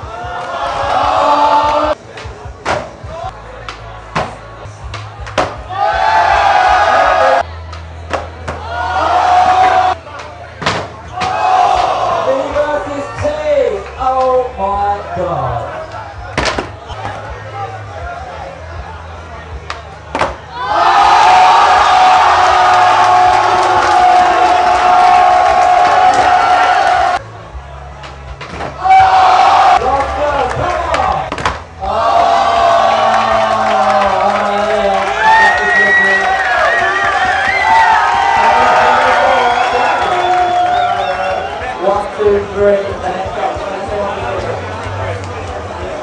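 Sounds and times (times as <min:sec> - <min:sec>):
crowd shouting: 0:00.0 - 0:02.0, 0:05.6 - 0:07.4, 0:08.5 - 0:10.0, 0:11.0 - 0:12.4, 0:20.5 - 0:27.2, 0:28.8 - 0:42.0
bass music: 0:00.0 - 0:46.0.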